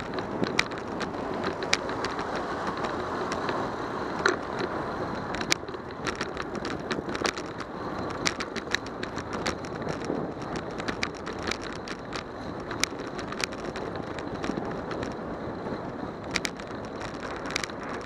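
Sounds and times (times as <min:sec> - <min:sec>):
bicycle clicks and rattles: 0:00.0 - 0:18.0
bicycle tyres on concrete: 0:00.0 - 0:18.0.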